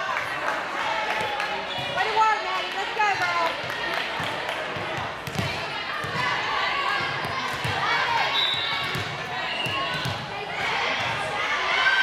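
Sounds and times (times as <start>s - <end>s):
chatter of people: 0.0s - 12.0s
volleyball bouncing on hardwood floor: 4.2s - 6.3s, 8.8s - 11.2s.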